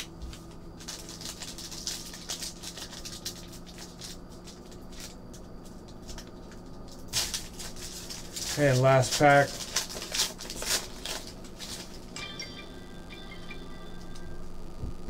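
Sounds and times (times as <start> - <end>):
foil wrapper crinkling: 0.0 - 12.2.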